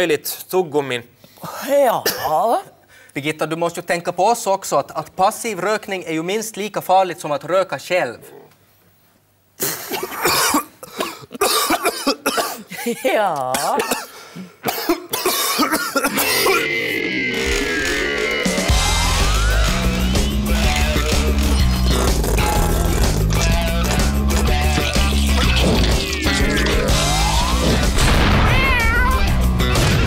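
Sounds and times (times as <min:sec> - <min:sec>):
person coughing harshly: 0:02.0 - 0:02.5, 0:09.6 - 0:17.0
loud music: 0:17.7 - 0:30.0
music with downward sliding tones: 0:18.5 - 0:21.4
cat yowling: 0:26.2 - 0:29.4.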